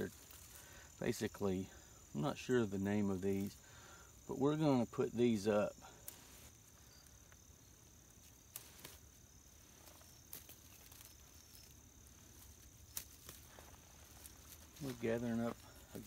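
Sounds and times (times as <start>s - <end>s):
crickets trilling: 0.0s - 16.0s
dry weed stems snapping: 6.0s - 7.4s, 8.2s - 16.0s.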